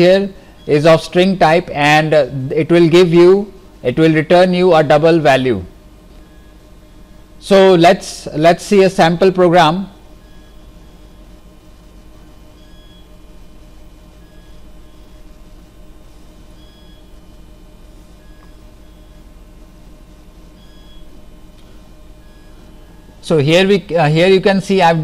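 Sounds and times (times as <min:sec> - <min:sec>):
background hum and hiss: 0:00.0 - 0:25.0
faint steady tones: 0:00.0 - 0:25.0.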